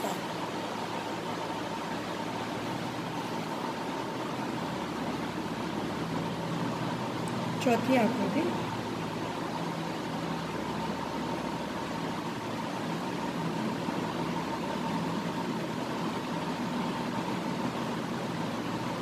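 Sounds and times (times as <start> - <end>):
faint constant hum: 0.0 - 19.0.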